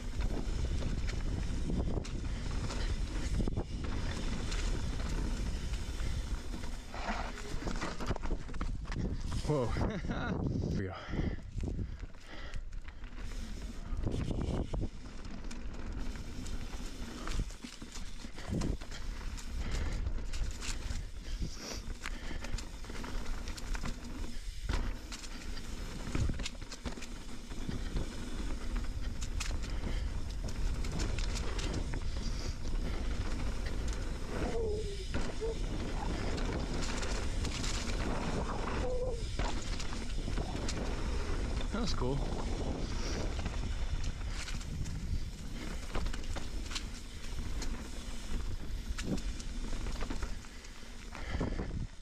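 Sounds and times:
wind buffeting microphone: 0.0s - 6.7s, 7.5s - 12.1s, 13.8s - 15.1s, 28.9s - 46.4s, 51.2s - 52.0s
tyres rolling over dirt: 0.0s - 10.4s, 12.2s - 51.9s
bike rattling and clicking: 0.0s - 52.0s.

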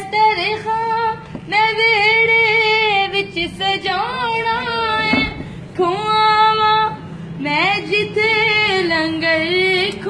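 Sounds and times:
high voice singing devotional song: 0.0s - 10.0s
steady low hum: 0.0s - 10.0s.

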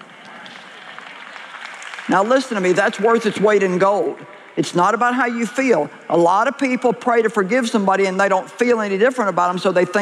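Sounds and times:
audience applauding: 0.0s - 4.5s.

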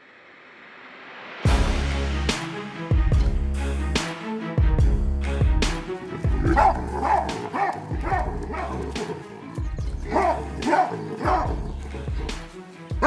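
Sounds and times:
baboons barking: 5.9s - 13.0s.

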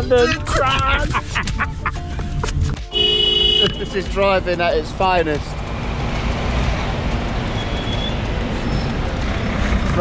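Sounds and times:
road traffic rumble: 0.0s - 10.0s
bus passing close: 5.7s - 10.0s.

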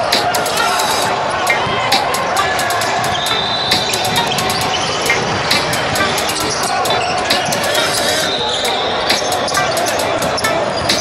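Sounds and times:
game noise in gym: 0.0s - 11.0s
players' voices echoing: 0.0s - 11.0s.

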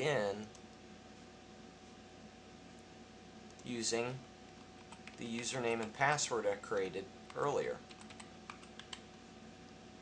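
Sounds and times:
keyboard keys clicking: 4.8s - 6.0s, 6.7s - 9.0s.

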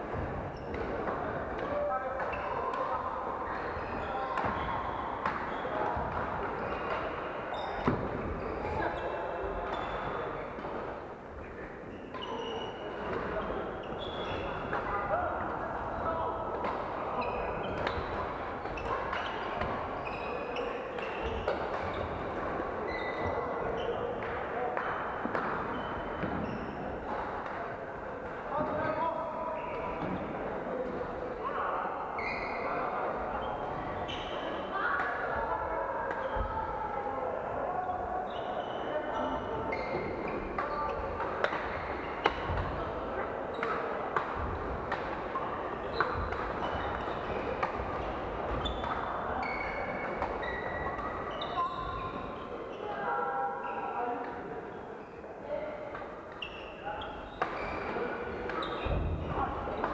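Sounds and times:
sneakers squeaking on wooden floor: 0.1s - 0.9s, 3.5s - 10.4s, 11.9s - 14.7s, 17.2s - 22.2s, 22.8s - 24.2s, 25.0s - 26.9s, 32.2s - 34.7s, 37.8s - 42.7s, 45.4s - 52.9s, 56.3s - 59.9s
racket hitting shuttlecock: 40.6s - 42.8s.

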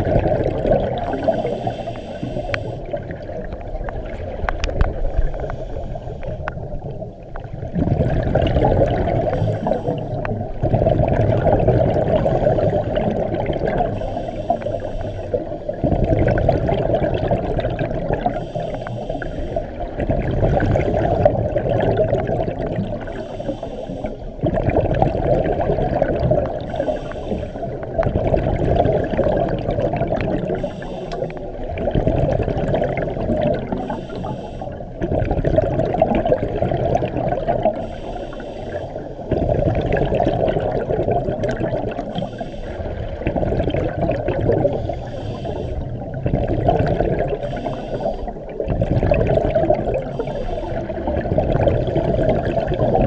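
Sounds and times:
exhaled bubbles gurgling underwater: 0.0s - 53.0s
regulator inhalation hiss: 1.1s - 2.9s, 5.0s - 6.6s, 9.3s - 10.3s, 13.9s - 15.8s, 18.3s - 19.9s, 23.1s - 24.4s, 26.7s - 27.8s, 30.5s - 31.6s, 33.8s - 34.8s, 37.8s - 39.3s, 42.1s - 43.0s, 44.7s - 46.0s, 47.4s - 48.4s, 50.0s - 51.1s.

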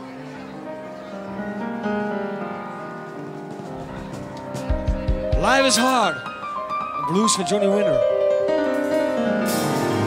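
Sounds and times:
band instruments playing softly: 0.0s - 10.0s
blues piano chords: 0.0s - 10.0s.

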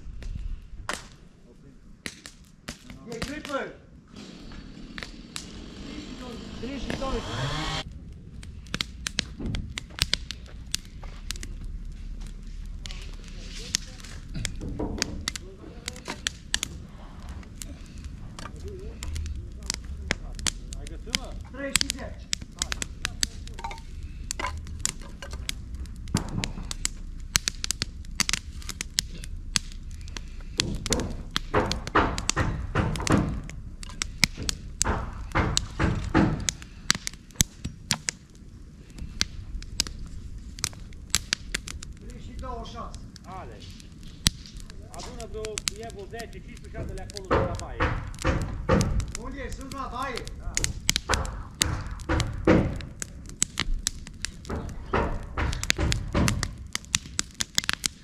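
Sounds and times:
indistinct voices: 4.2s - 7.8s
sharp knocks and clicks: 30.5s - 37.1s, 46.8s - 49.8s, 50.5s - 53.6s, 54.3s - 57.0s.

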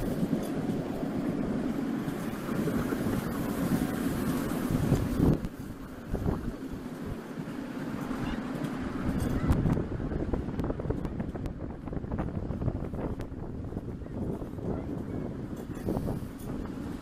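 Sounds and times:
miniature train rumbling on track: 0.0s - 17.0s
wind buffeting microphone: 0.0s - 17.0s.

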